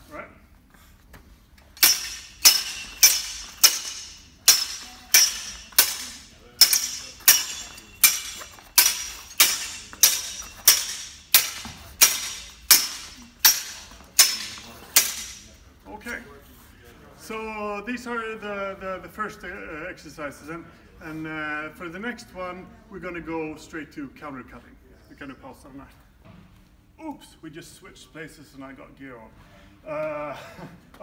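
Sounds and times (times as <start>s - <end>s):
sword blades clashing: 1.8s - 15.6s.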